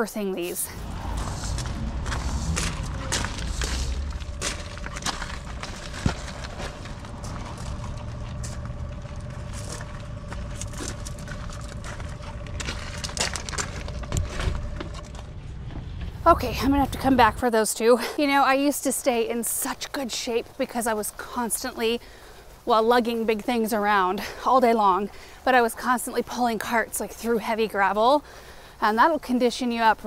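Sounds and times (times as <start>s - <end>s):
steady low rumble: 0.1s - 28.8s
plastic pots scraping on gravel: 0.6s - 15.2s.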